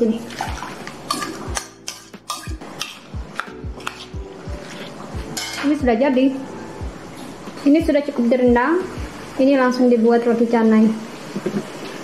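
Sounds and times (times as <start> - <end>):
background music with steady beat: 0.0 - 9.5
metal spoon scraping ceramic bowls: 1.1 - 5.8.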